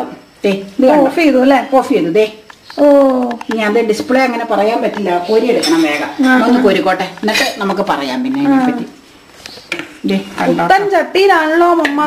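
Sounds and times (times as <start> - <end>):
woman talking: 0.0 - 9.0, 10.0 - 12.0.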